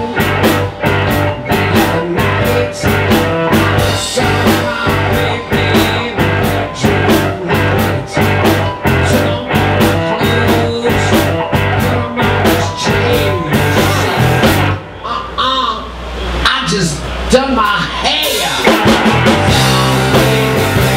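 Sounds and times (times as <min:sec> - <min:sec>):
drums steady beat: 0:00.0 - 0:14.8, 0:17.6 - 0:20.9
electric guitar: 0:00.0 - 0:15.1, 0:17.9 - 0:20.9
bass guitar: 0:00.0 - 0:16.4, 0:17.1 - 0:20.9.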